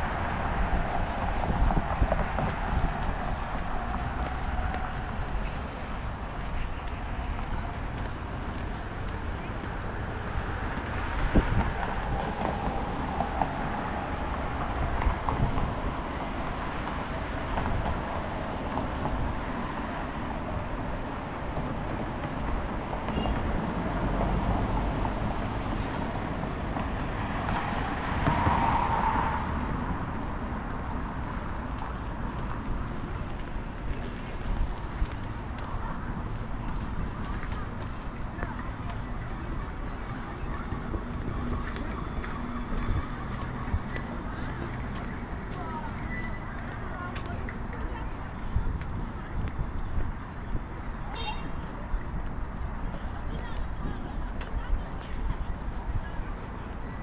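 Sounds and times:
vehicle passing: 0.0 - 45.9
road traffic rumble: 0.0 - 57.0.

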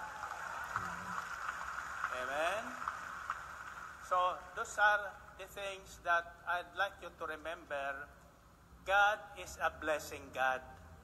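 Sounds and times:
murmur of seated crowd: 0.0 - 6.5.

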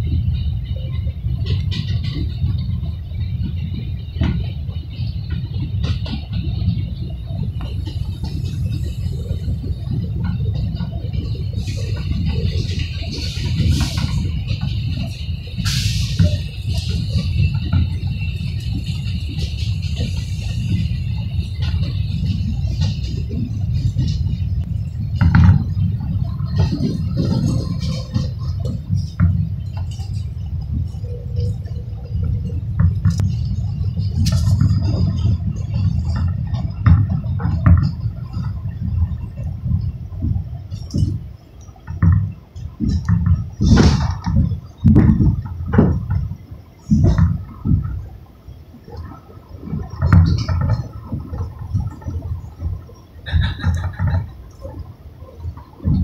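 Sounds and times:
passing train high whine: 0.0 - 56.0
train wheels rumbling on rail: 0.0 - 56.0.

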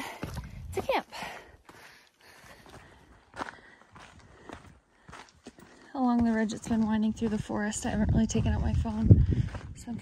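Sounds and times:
footsteps on forest trail: 0.0 - 10.0.

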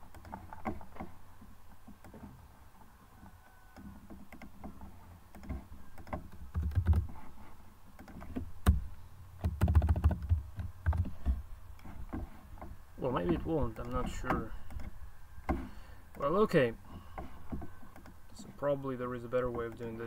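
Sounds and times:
keyboard typing: 9.4 - 11.1.

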